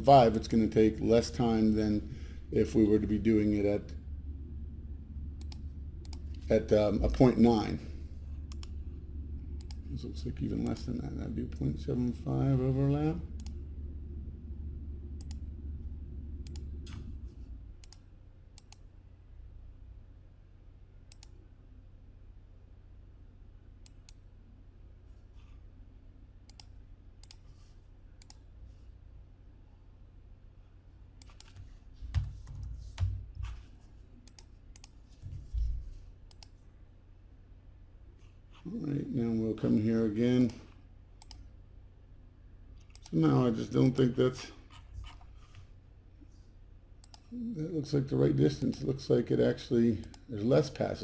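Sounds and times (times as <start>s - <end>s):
low steady hum: 0.0s - 51.0s
computer mouse clicks: 5.4s - 6.4s, 8.5s - 8.8s, 9.6s - 9.8s, 13.4s - 13.6s, 15.2s - 15.4s, 16.4s - 17.1s, 17.8s - 18.9s, 21.1s - 21.4s, 26.5s - 27.5s, 28.2s - 28.4s, 31.2s - 33.6s, 34.2s - 35.2s, 36.3s - 36.6s, 41.2s - 41.5s, 42.8s - 43.2s, 47.0s - 47.3s.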